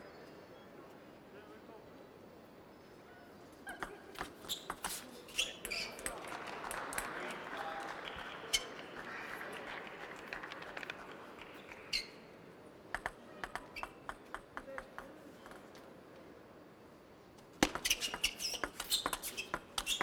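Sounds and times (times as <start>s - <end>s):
voices in the hall: 0.0s - 20.0s
crowd reaction: 6.0s - 12.2s
table tennis ball clicks: 13.0s - 15.7s.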